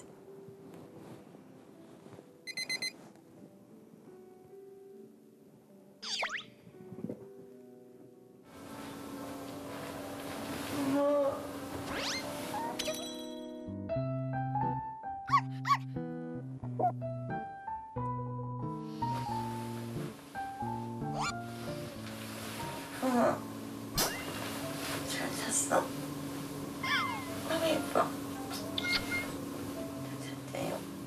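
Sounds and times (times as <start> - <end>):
light piano music: 0.0 - 31.0
digital alarm beeping: 2.5 - 3.0
small dog yipping: 12.0 - 13.1, 15.3 - 15.8, 21.1 - 21.4, 26.8 - 27.4, 28.5 - 29.4.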